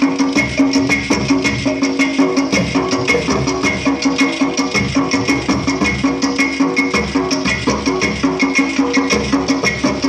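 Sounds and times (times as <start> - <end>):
clay pots and hand drums: 0.0 - 10.0.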